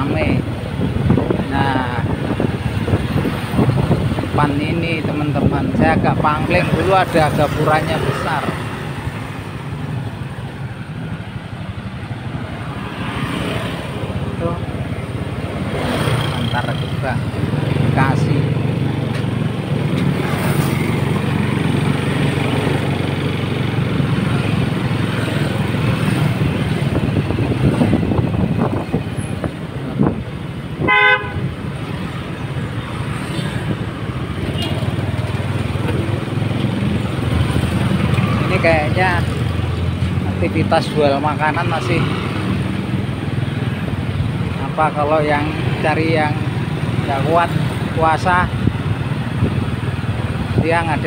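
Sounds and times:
vehicle engine and road rumble: 0:00.0 - 0:51.0
car horn toot: 0:30.8 - 0:31.5.

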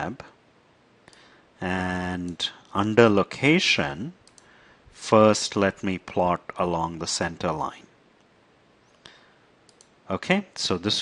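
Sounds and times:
computer mouse click: 0:04.2 - 0:04.5, 0:09.7 - 0:10.0.

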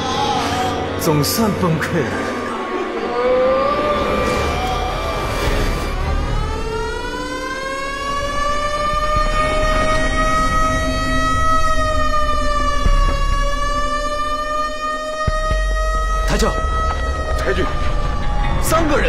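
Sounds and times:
alarm siren wailing: 0:02.2 - 0:19.0.

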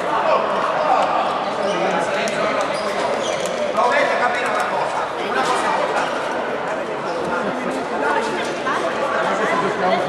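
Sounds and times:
players talking and calling: 0:00.0 - 0:10.0.

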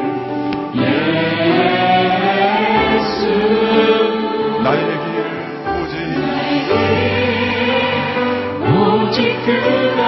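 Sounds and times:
many voices singing along: 0:00.6 - 0:10.0
women singing into microphones: 0:06.7 - 0:10.0.

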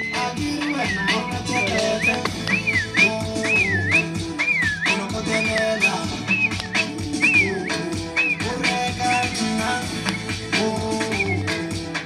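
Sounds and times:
high whistling melody: 0:00.0 - 0:11.8
dance music: 0:00.0 - 0:12.0.

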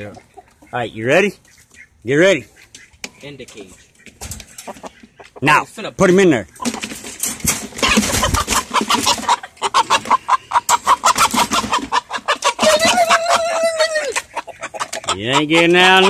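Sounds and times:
chickens clucking in alarm: 0:00.0 - 0:16.0
scuffling and rattling in cage: 0:02.6 - 0:16.0
chicken squawk: 0:03.6 - 0:05.6, 0:07.7 - 0:16.0.

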